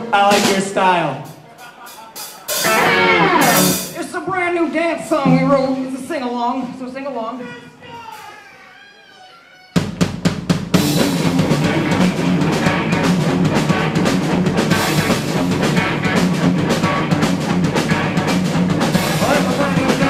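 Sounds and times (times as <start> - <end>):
punk rock band playing loud: 0.0 - 4.1, 9.8 - 20.0
sharp drum hits: 5.2 - 6.0.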